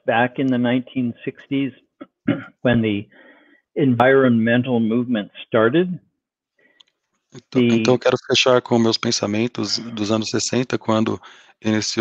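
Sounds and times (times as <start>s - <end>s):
man speaking: 0.0s - 3.2s, 3.8s - 6.0s, 7.4s - 12.0s.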